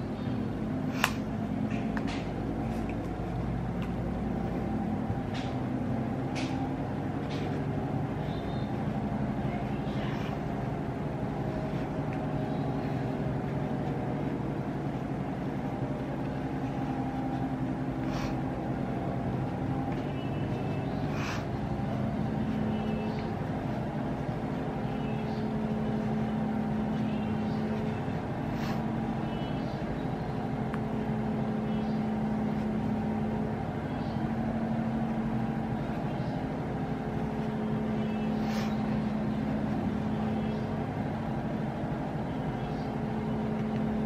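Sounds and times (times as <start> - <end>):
low machine hum: 0.0 - 44.0.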